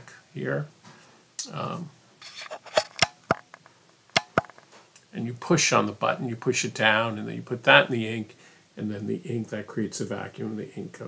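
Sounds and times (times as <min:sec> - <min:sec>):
pen cap scraping: 0:02.2 - 0:03.5.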